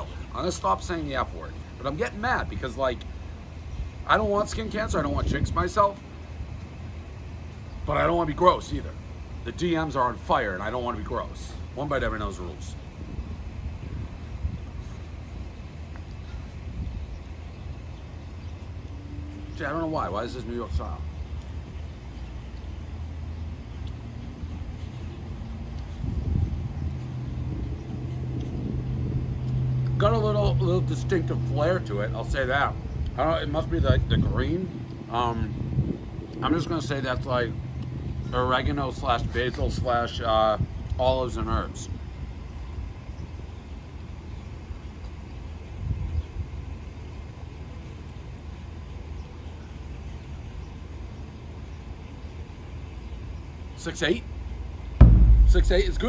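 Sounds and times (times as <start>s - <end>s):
background traffic rumble: 0.0s - 56.0s.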